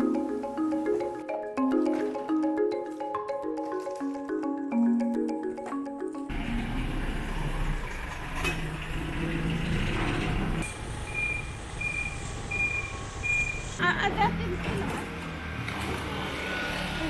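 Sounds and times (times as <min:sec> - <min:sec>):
marimba music: 0:00.0 - 0:07.4
truck engine running: 0:06.3 - 0:13.8
reversing alarm beeps: 0:11.0 - 0:13.8.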